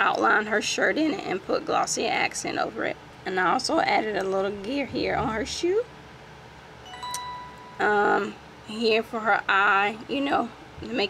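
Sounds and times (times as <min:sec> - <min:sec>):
soft short chime ring: 0:06.8 - 0:08.3.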